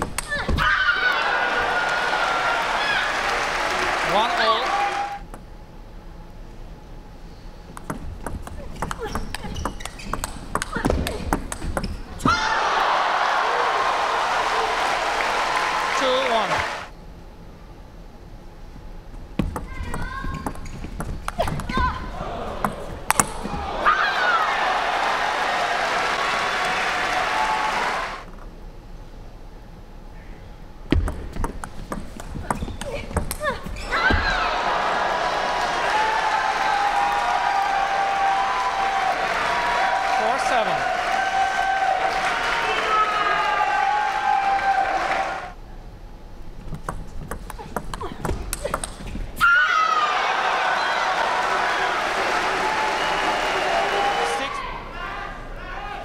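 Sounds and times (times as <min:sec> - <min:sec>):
crowd cheering and shouting: 0:00.3 - 0:05.2, 0:12.2 - 0:16.9, 0:21.7 - 0:28.3, 0:33.9 - 0:45.6, 0:49.4 - 0:56.0
table tennis ball clicking: 0:07.7 - 0:12.0, 0:46.7 - 0:49.0.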